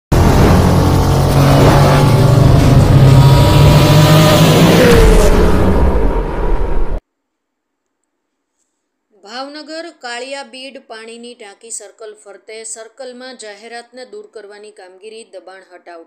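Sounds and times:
car engine sound effect: 0.1s - 7.0s
falling tone: 0.1s - 7.0s.

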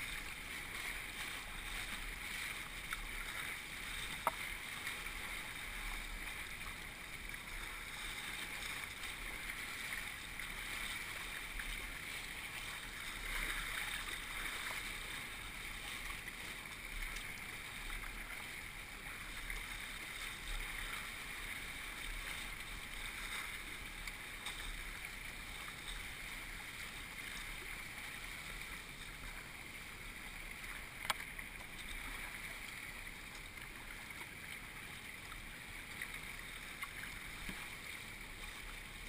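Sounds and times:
whitewater rushing and splashing: 0.0s - 39.0s.

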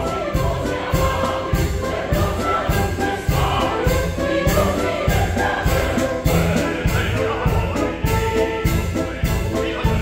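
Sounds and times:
accordion: 0.0s - 10.0s
chorus singing: 0.0s - 10.0s
frame drum beat: 0.0s - 10.0s
violin: 0.0s - 10.0s.

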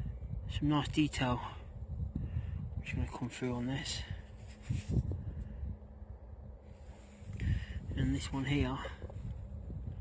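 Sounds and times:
wind rumble on microphone: 0.0s - 10.0s
soft rustle: 3.9s - 5.6s, 6.6s - 9.6s.

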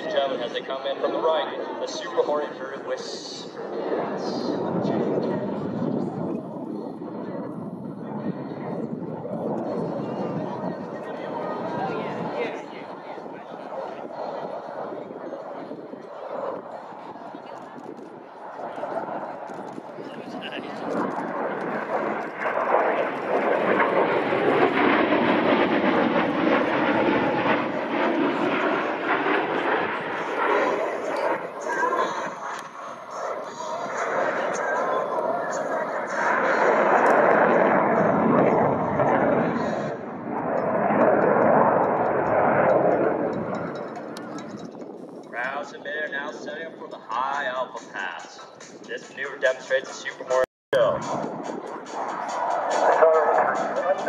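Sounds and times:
jet flying overhead: 0.0s - 54.0s.

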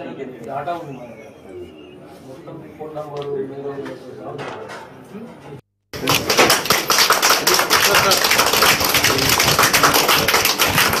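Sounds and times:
people clapping: 6.0s - 11.0s.

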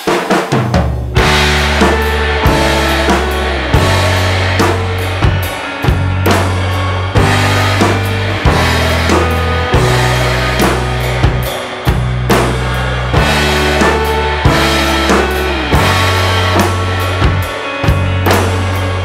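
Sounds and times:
drum kit bass and snare hits: 0.0s - 19.0s
recorded song with low notes: 0.1s - 19.0s.

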